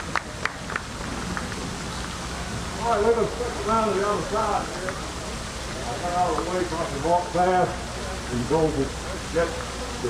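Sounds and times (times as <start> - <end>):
fountain water splashing: 0.0 - 10.0.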